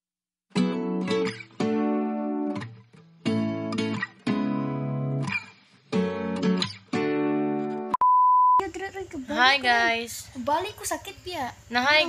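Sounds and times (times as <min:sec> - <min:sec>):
steady high beep: 0:07.9 - 0:08.6.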